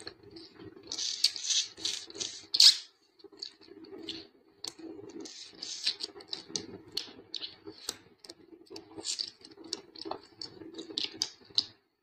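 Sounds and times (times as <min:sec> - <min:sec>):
mouth smacking and sucking: 0:00.3 - 0:11.7.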